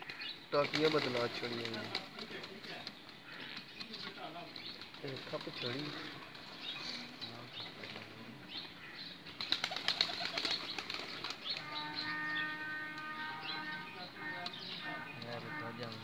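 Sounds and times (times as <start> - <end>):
pigeon flapping wings: 0.1 - 6.5, 9.4 - 11.8.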